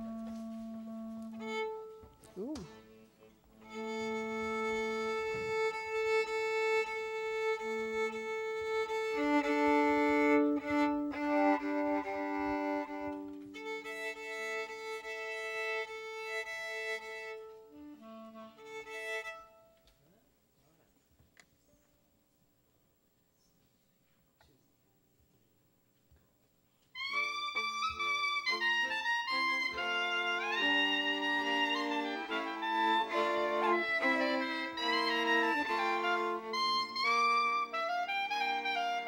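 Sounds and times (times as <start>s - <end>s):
violin clarinet and accordion playing: 0.0s - 19.7s, 27.0s - 39.0s.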